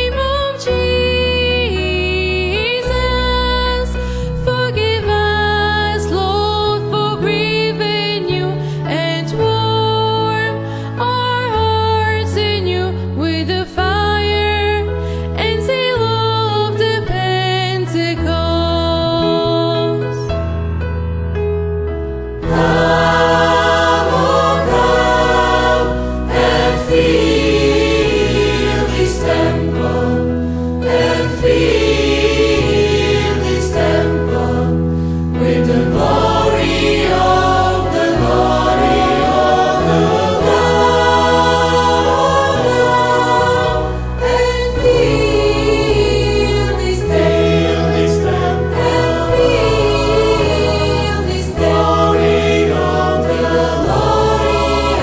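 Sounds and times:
church choir singing: 0.0 - 14.8, 22.1 - 55.0
sustained low notes: 22.2 - 48.1.

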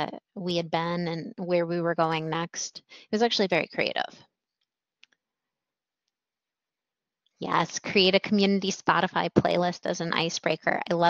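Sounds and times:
person speaking: 0.0 - 4.1, 7.4 - 11.0.

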